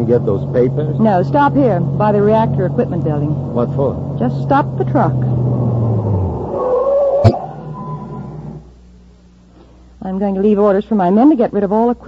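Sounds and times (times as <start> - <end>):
truck motor: 0.0 - 8.8
brake squeal: 5.2 - 8.7
sharp thump: 7.2 - 7.5.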